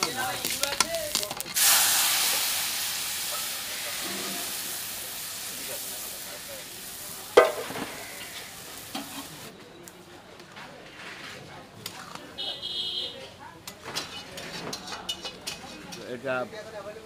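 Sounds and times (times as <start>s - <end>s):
lentils sizzling in hot oil: 0.0s - 9.5s.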